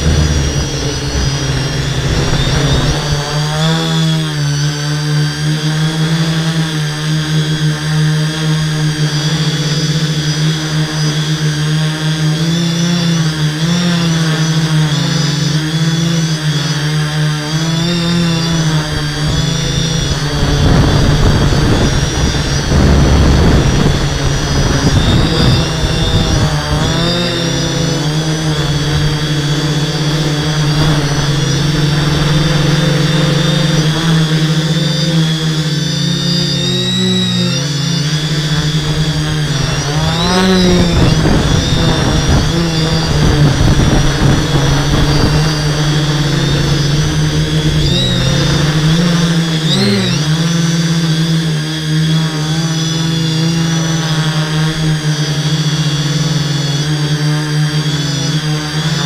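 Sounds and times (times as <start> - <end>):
rough rush of noise: 0.0 - 4.5, 17.9 - 50.2
drone propellers buzzing: 0.0 - 59.0.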